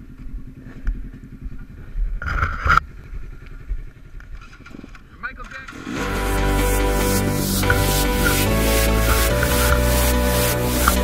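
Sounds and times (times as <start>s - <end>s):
vehicle engine idling: 2.9s - 11.0s.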